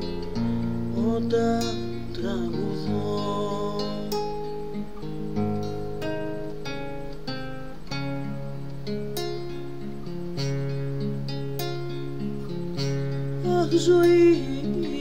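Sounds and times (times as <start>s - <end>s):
acoustic guitar playing: 0.0s - 15.0s.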